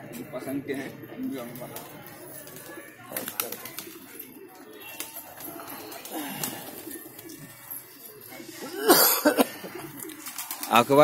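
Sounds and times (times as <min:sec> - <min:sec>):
pigeons cooing: 0:00.1 - 0:11.0.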